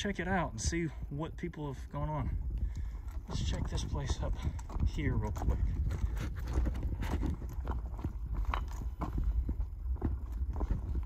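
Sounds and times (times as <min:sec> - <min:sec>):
low wind rumble on microphone: 0:00.0 - 0:11.0
footsteps on clacking rocks: 0:02.0 - 0:11.0.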